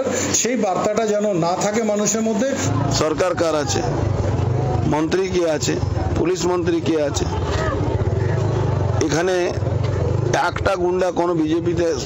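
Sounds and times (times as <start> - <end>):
vehicle engine rumbling: 0.8 - 12.0.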